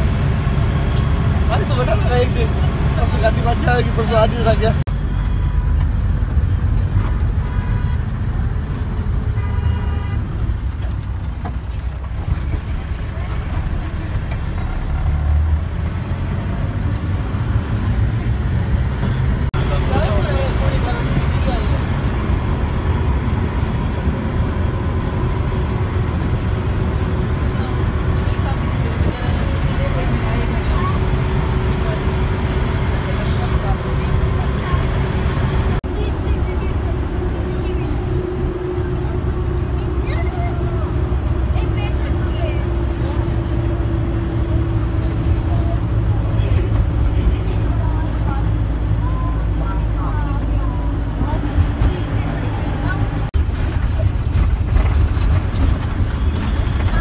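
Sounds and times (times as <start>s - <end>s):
passengers chattering: 0.0s - 5.8s, 8.2s - 57.0s
minibus engine and road rumble: 0.0s - 57.0s.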